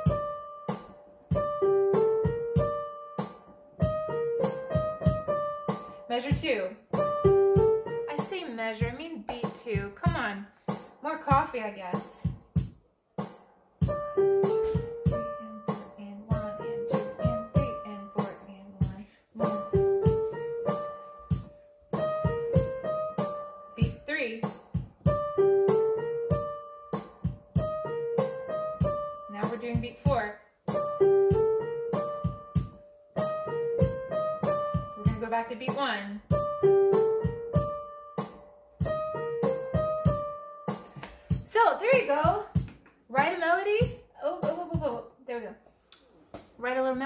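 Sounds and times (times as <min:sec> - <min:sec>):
electric piano melody: 0:00.0 - 0:09.0, 0:13.8 - 0:42.7.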